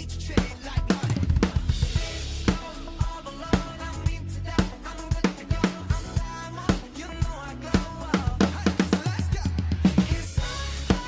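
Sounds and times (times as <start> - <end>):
electronic drum kit beat: 0.0 - 11.0
pop backing track: 0.0 - 11.0
drum fill: 0.4 - 11.0.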